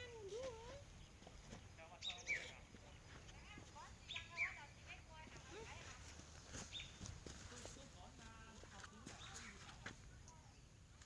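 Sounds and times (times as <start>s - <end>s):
birds chirping: 0.0s - 5.8s, 6.6s - 10.9s.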